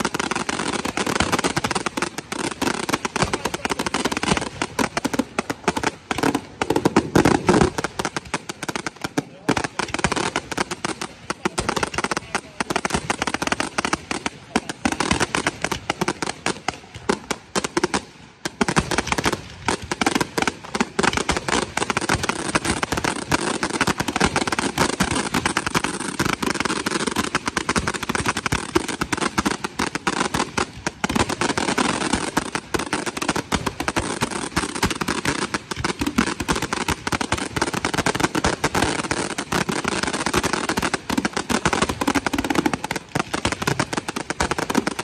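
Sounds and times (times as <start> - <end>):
fireworks bangs and crackles: 0.0 - 45.0.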